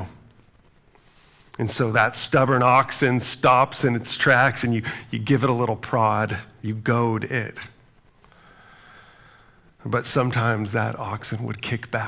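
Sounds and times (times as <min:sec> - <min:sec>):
man speaking: 0:00.0 - 0:00.3, 0:01.5 - 0:07.8, 0:09.8 - 0:12.0
man breathing into microphone: 0:00.9 - 0:01.6, 0:08.2 - 0:09.8.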